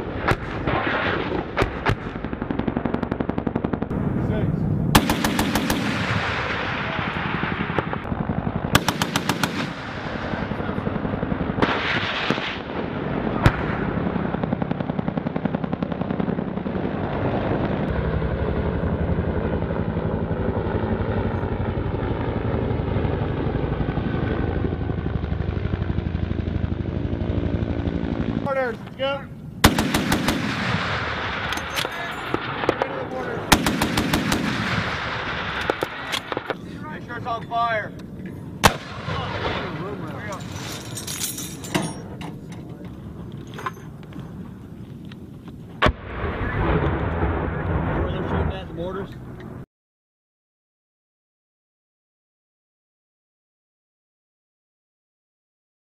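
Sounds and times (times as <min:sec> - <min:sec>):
automatic gunfire: 0:04.9 - 0:06.6, 0:08.7 - 0:09.9, 0:29.6 - 0:31.1, 0:33.4 - 0:35.0.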